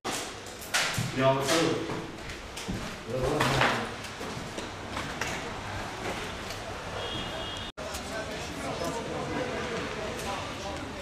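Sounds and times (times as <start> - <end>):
steady noisy background: 0.1 - 11.0.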